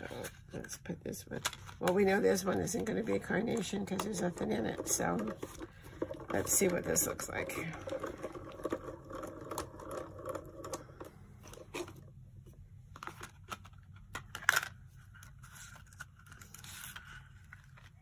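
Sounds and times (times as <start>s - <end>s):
plastic plates scraping and clicking: 1.4s - 12.0s.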